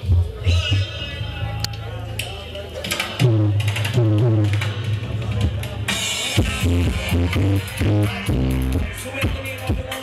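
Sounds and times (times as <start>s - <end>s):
reggae through sound system: 0.0s - 10.0s.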